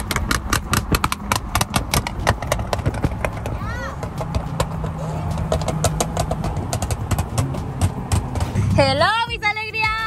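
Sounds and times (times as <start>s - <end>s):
car engine drone: 0.0s - 10.0s
road noise: 0.0s - 10.0s.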